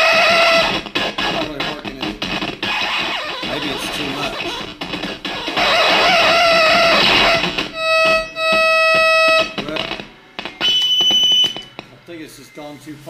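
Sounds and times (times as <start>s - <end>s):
buzzy electronic tone: 0.0s - 11.8s
warbling electronic tone: 2.5s - 9.8s.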